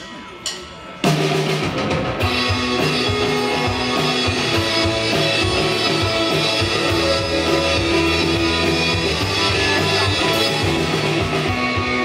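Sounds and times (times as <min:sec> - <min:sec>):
drum kit beat: 0:00.6 - 0:12.0
electric guitars: 0:01.0 - 0:12.0.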